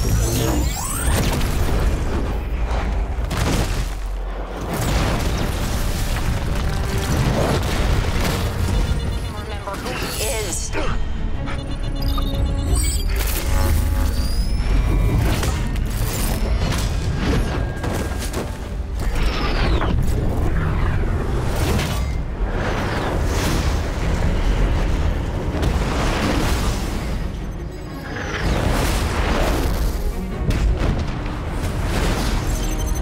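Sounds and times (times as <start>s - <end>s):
film score music: 0.0s - 33.0s.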